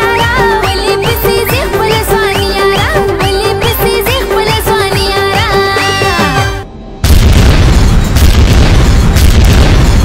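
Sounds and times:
person singing with music: 0.0s - 6.7s
music: 0.0s - 10.0s
cinematic boom: 6.9s - 10.0s
rumbling roar of fire and explosions: 6.9s - 10.0s.

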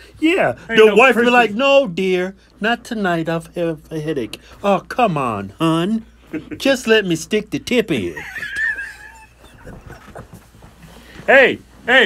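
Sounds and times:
men laughing breathily: 6.3s - 6.6s, 8.1s - 11.0s.

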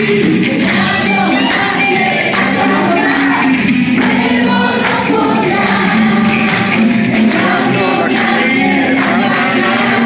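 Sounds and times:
congregation singing gospel song: 0.0s - 10.0s
worship band playing: 0.0s - 10.0s.

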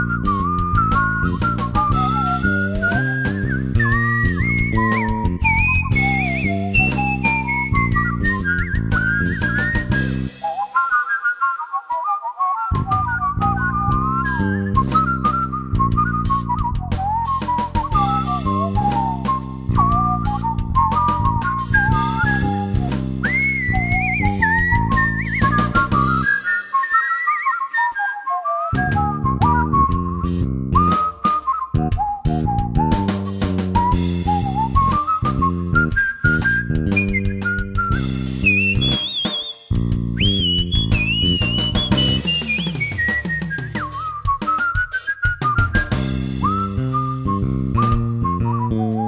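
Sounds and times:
instrumental backing with bass and drums: 0.0s - 11.0s, 12.7s - 27.0s, 28.7s - 49.0s
whistled melody: 0.0s - 49.0s.

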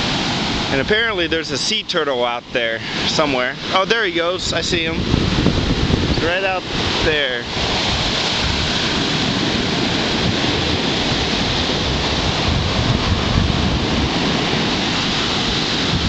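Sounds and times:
surf breaking on a beach: 0.0s - 16.0s
wind rumbling on microphone: 0.0s - 16.0s.

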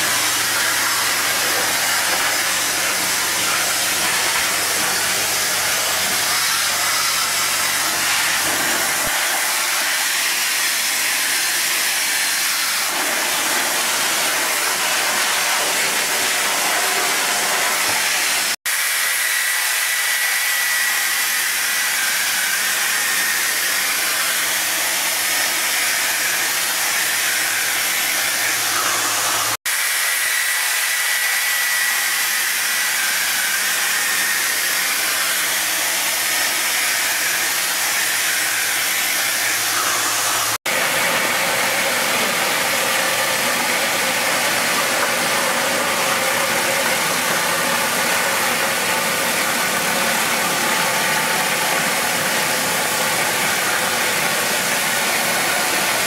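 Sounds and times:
high-pressure cleaning wand hissing: 0.0s - 56.0s.

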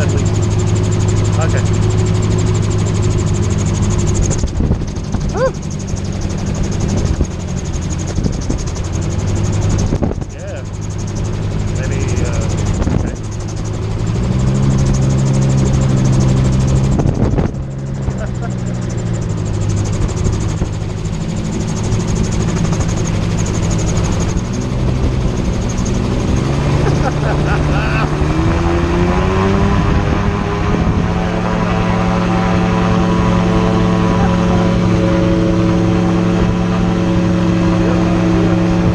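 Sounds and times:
gyroplane engine and propeller: 0.0s - 38.9s
wind rushing past cockpit: 0.0s - 38.9s.

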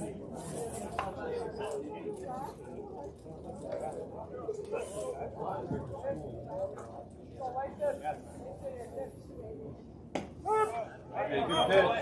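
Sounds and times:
spectators' voices: 0.0s - 12.0s
baseball hitting glove crack: 10.1s - 10.4s.

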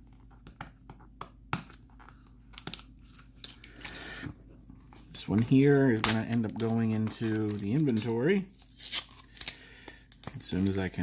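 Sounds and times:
packing tape tearing and crinkling: 5.2s - 10.8s.

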